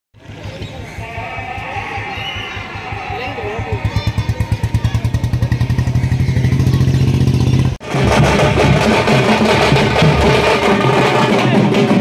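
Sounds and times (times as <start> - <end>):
loud band music with drums: 1.9 - 12.0
drum roll: 2.6 - 12.0.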